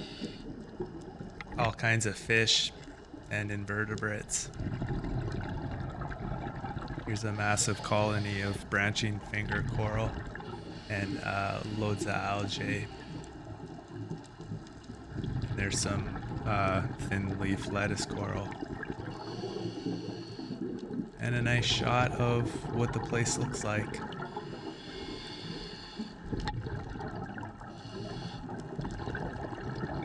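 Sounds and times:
underwater bubbling: 0.0 - 30.0
low underwater rumble: 4.4 - 7.9
regulator breathing hiss: 24.4 - 26.2, 27.8 - 28.5.

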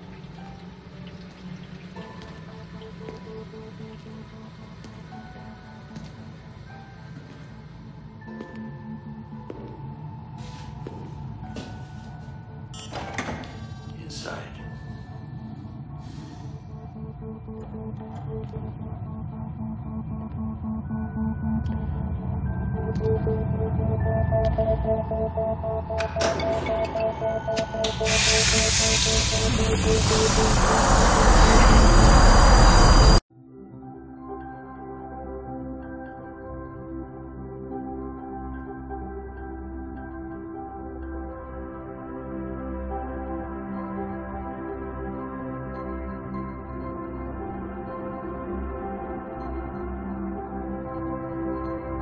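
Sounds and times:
gas hissing loudly: 28.0 - 33.2
low droning hum: 28.3 - 33.2
heavy low rumble: 28.7 - 33.2.

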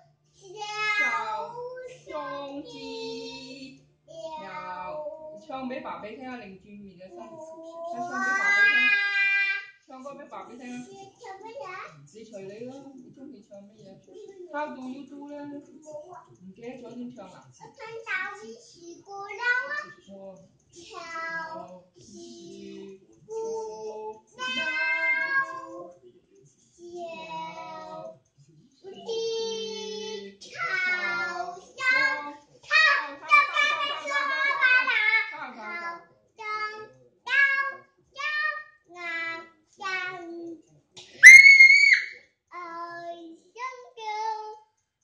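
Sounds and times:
toddler singing: 0.4 - 5.4, 7.2 - 9.7, 20.8 - 26.0, 26.8 - 28.1, 28.8 - 40.6, 42.5 - 44.7
child's high-pitched squeal: 41.2 - 42.2.

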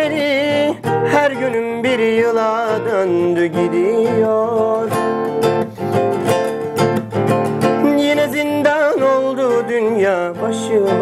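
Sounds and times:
man singing: 0.0 - 5.8, 7.6 - 11.0
classical guitar strummed: 0.0 - 11.0.

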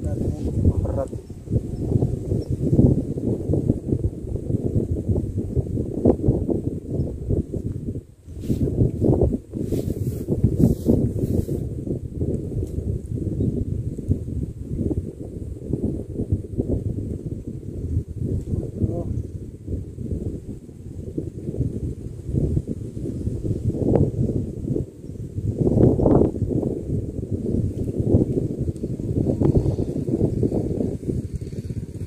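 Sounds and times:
wind buffeting microphone: 0.0 - 32.0
short rustles: 9.6 - 11.6.

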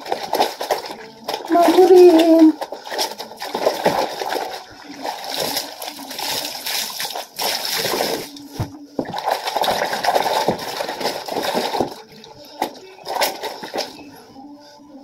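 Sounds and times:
fabric rubbed in water: 0.0 - 12.2
water splashing and sloshing: 0.0 - 14.2.

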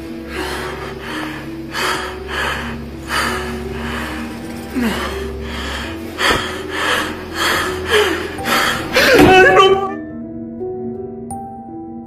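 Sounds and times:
low held music notes: 0.0 - 11.8
man breathing hard: 0.1 - 9.3.

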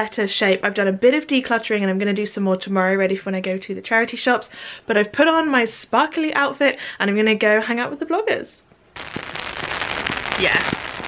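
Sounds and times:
rain hitting an umbrella: 9.0 - 11.0.

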